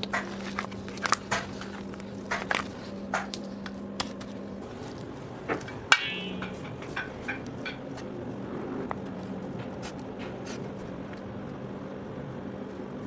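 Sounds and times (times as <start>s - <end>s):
utensil knocking metal bowl: 5.9s - 7.8s.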